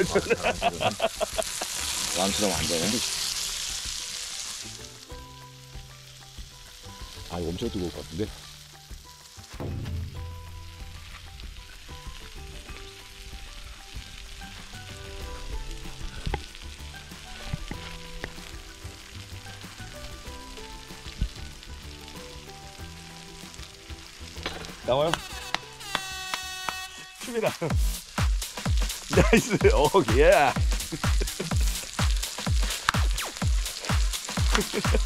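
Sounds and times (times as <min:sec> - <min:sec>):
pork belly sizzling on a griddle: 0:00.0 - 0:35.0
soft background music: 0:00.0 - 0:35.0.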